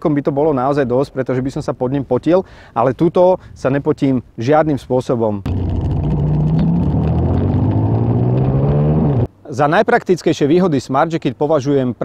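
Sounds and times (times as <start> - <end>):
motorcycle engine accelerating: 5.5 - 9.3.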